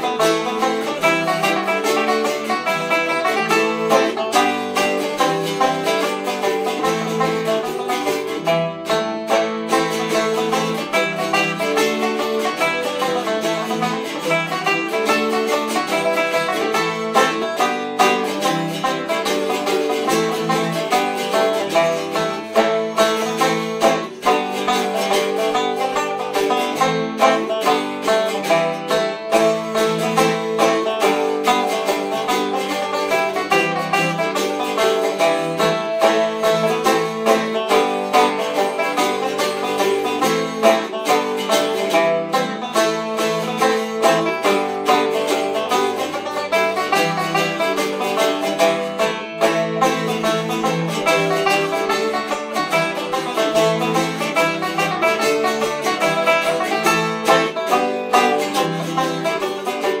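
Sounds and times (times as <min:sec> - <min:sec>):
banjo: 0:00.0 - 1:00.0
bouzouki picking: 0:00.0 - 1:00.0.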